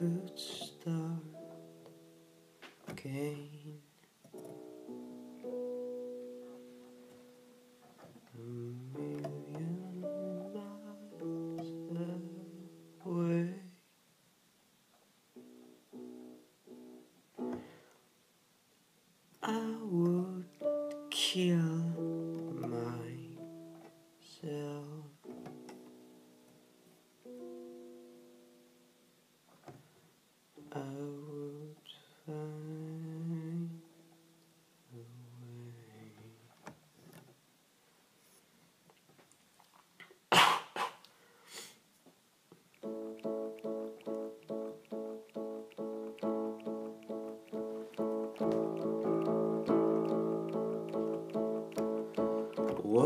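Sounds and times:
person singing: 0.0s - 1.7s, 2.9s - 3.9s, 8.3s - 13.8s, 19.4s - 23.6s, 24.2s - 25.3s, 30.6s - 33.9s, 42.8s - 53.0s
slow synthesizer chords: 42.8s - 53.0s.

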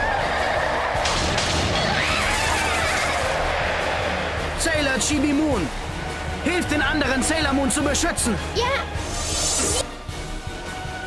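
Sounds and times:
film background music: 0.0s - 11.0s
sudden hissing burst: 9.0s - 9.8s.

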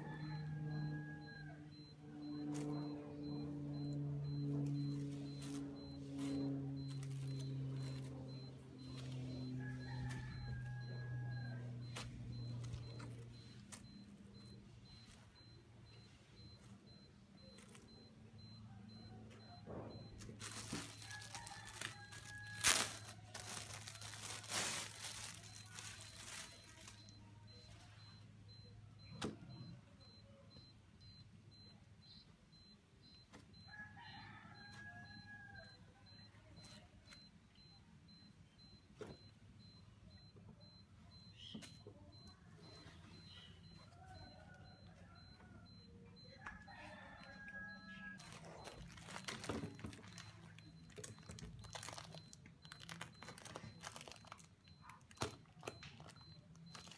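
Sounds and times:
cloth and plastic rustling: 4.5s - 10.6s, 20.0s - 27.9s, 48.2s - 56.9s.

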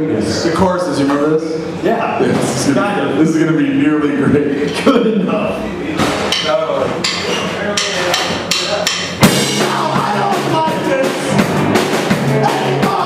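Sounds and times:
sharp drum hits: 6.0s - 13.0s
rock band playing: 8.4s - 13.0s.

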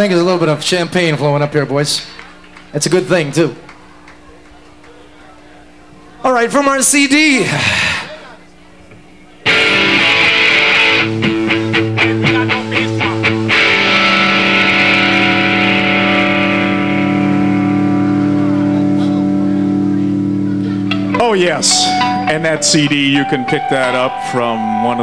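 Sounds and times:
rock band playing: 9.5s - 25.0s.

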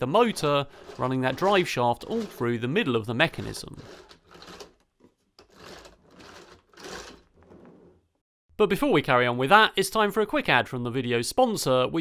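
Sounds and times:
plastic parts rubbing and rattling: 0.0s - 8.2s.

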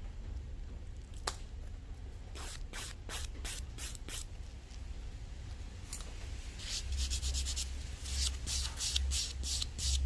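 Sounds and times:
nail file on fingernail: 6.6s - 10.0s.

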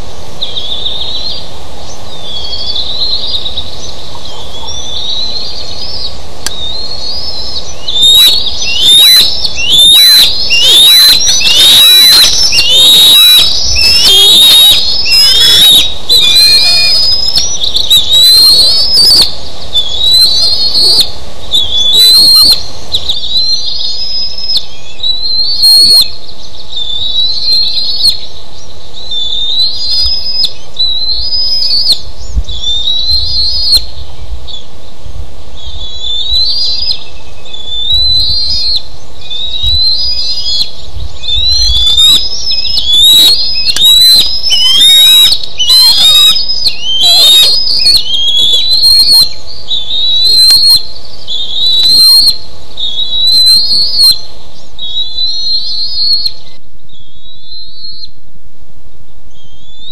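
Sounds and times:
young eagles whistled calls: 0.4s - 34.7s, 35.6s - 58.2s.

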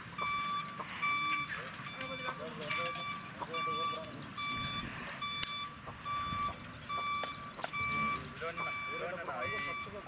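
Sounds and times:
reversing alarm beeping: 0.1s - 10.0s.

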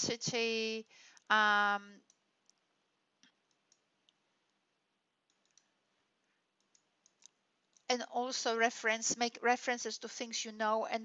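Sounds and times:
computer mouse clicks: 2.0s - 4.6s, 5.2s - 5.8s, 6.6s - 7.9s.

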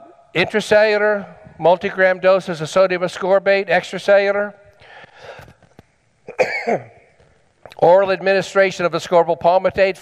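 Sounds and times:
breathy sound: 4.8s - 5.6s
man coughing: 6.3s - 7.0s.

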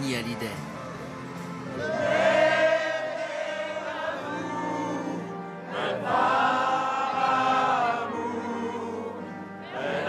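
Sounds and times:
crowd singing in unison: 1.4s - 10.0s.

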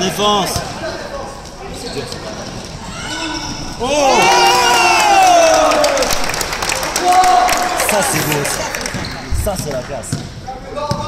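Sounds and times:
spectators cheering and shouting: 2.8s - 9.5s.

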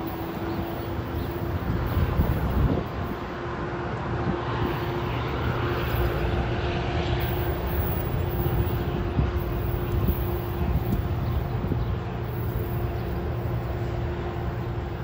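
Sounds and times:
diesel locomotive drone: 0.0s - 15.0s
train cars rumbling: 0.0s - 15.0s
wind buffeting microphone: 0.1s - 15.0s.

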